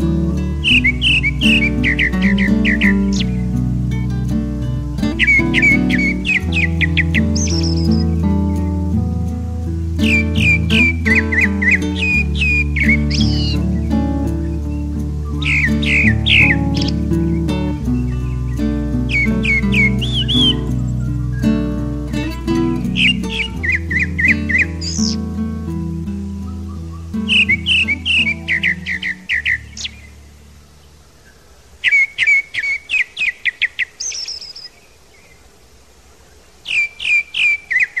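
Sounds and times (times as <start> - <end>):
soft background music: 0.0 - 30.7
thrush singing whistled notes: 0.0 - 35.4, 36.6 - 38.0.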